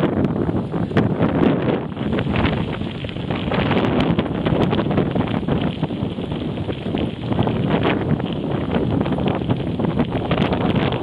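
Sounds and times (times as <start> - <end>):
wind buffeting microphone: 0.0 - 11.0
bicycle clicks and rattles: 1.3 - 11.0.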